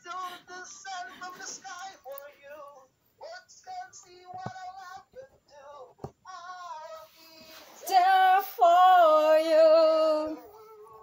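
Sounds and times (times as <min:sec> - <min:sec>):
person singing over video call: 0:00.0 - 0:11.0.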